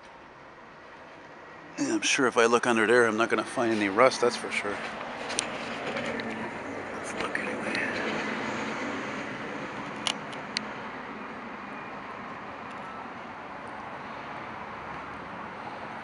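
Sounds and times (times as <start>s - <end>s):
distant traffic: 0.0s - 16.0s.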